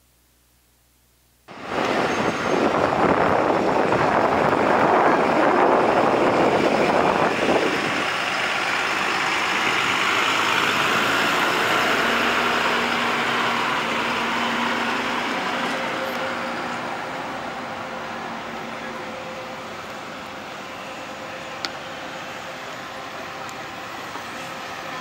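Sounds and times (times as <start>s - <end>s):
bus engine rumbling: 1.5s - 25.0s.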